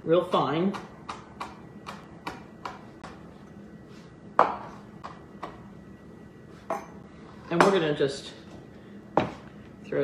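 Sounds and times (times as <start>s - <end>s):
knife chopping on cutting board: 0.6s - 3.2s, 4.4s - 5.6s.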